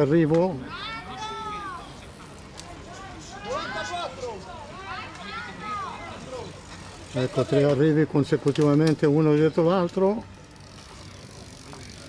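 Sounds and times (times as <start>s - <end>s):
distant people shouting: 0.6s - 7.6s.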